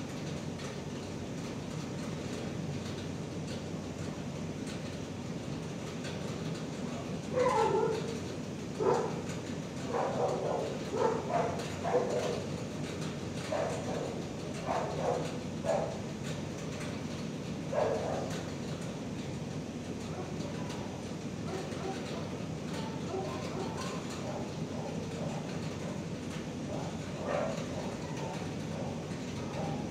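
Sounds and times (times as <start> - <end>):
steady low hum: 0.0 - 29.9
dogs barking and yipping: 7.3 - 8.1, 8.8 - 12.5, 13.5 - 16.1, 17.7 - 18.4, 21.5 - 26.0, 26.7 - 29.9.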